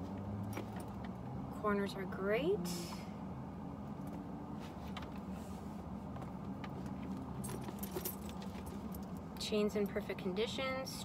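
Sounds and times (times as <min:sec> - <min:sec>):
metal chain jingling: 0:07.3 - 0:09.2.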